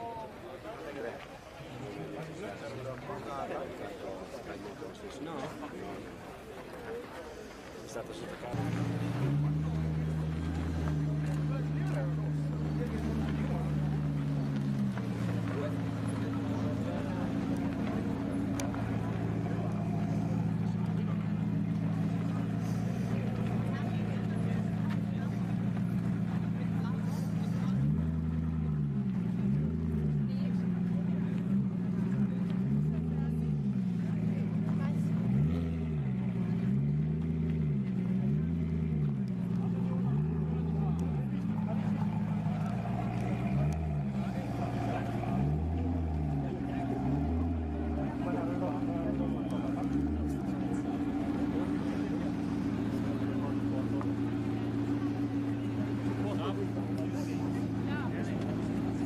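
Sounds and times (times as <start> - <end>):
car engine idling and revving: 0.9 - 59.0.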